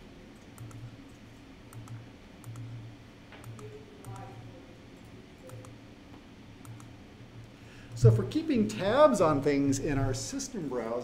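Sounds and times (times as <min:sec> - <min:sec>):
faint low hum: 0:00.0 - 0:11.0
computer mouse clicking: 0:00.4 - 0:02.8, 0:03.4 - 0:04.4, 0:05.0 - 0:05.8, 0:06.6 - 0:07.0.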